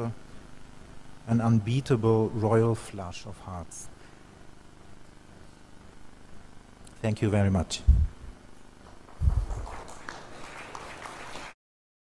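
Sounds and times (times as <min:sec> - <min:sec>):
faint audience applause: 0:08.9 - 0:11.6.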